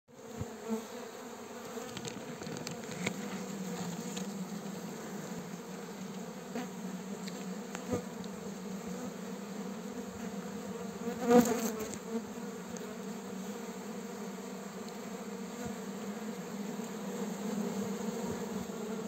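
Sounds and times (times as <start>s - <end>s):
bees buzzing: 0.2s - 19.0s.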